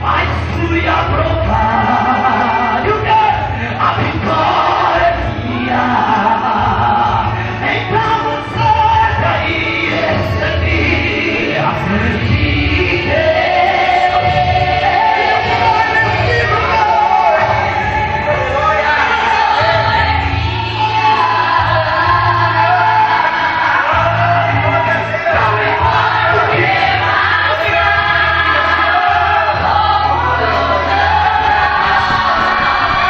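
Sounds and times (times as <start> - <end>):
amplified keyboard: 0.0 - 33.0
gospel choir singing: 0.0 - 33.0.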